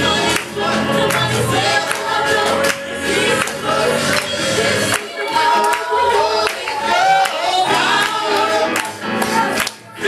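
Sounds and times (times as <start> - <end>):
voices singing worship music: 0.0 - 10.0.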